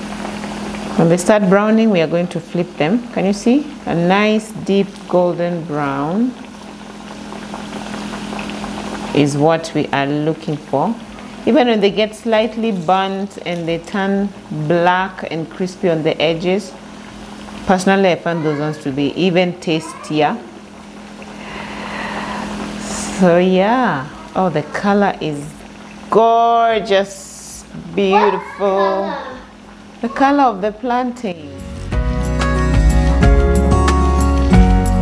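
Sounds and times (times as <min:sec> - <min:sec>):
oil bubbling and crackling: 0:00.0 - 0:31.4.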